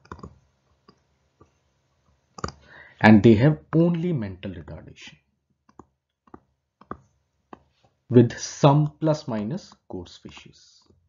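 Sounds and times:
stylus tapping on tablet screen: 5.6 - 8.0.

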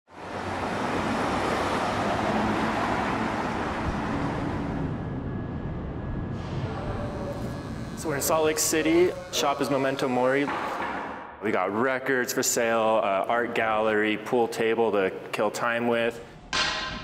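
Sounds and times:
cars driving along road: 0.1 - 6.4.

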